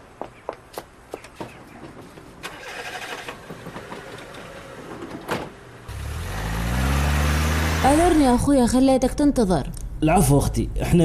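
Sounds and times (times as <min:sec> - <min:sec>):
car engine running: 0:05.8 - 0:08.5.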